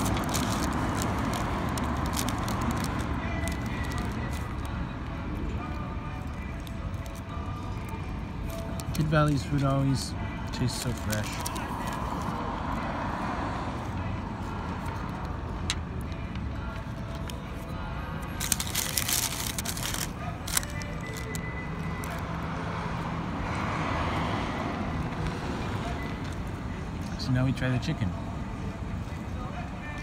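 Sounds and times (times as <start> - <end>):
paper crinkling: 0.0 - 4.6, 10.6 - 12.3, 18.2 - 21.4
low traffic rumble: 0.0 - 30.0.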